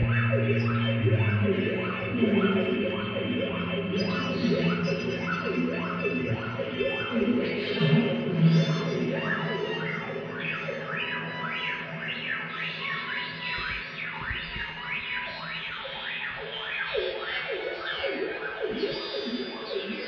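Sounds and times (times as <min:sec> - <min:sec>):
steady low drone: 0:00.0 - 0:13.5
sweeping electronic tones: 0:00.0 - 0:20.0.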